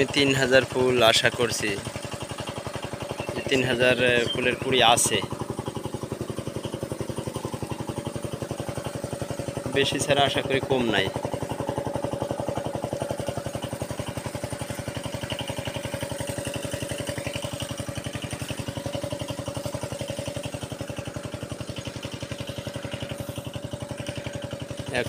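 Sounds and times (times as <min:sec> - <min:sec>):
pump engine chugging: 0:00.0 - 0:25.0.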